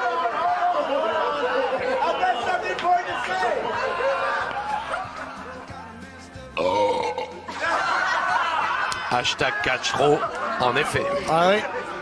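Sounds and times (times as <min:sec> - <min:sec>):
background music: 0:00.0 - 0:12.0
man burping loudly: 0:06.6 - 0:07.5.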